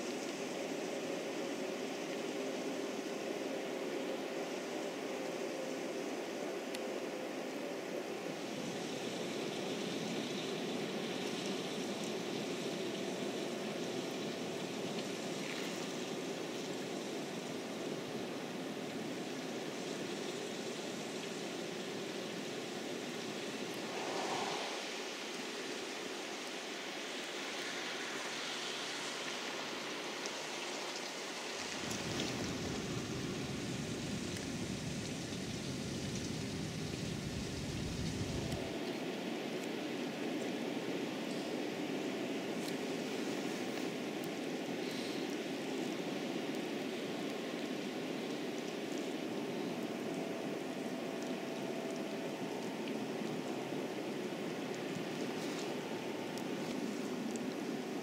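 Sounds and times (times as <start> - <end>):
rain hissing on wet ground: 0.0 - 58.0.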